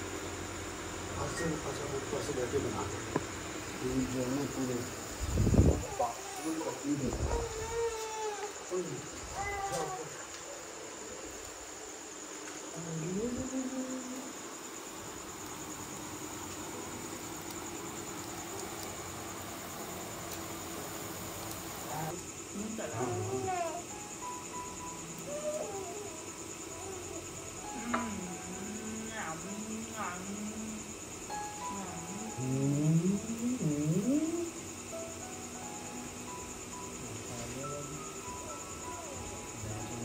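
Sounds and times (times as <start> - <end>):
crickets chirping: 0.0 - 40.0
soft background music: 22.7 - 33.4, 34.6 - 40.0.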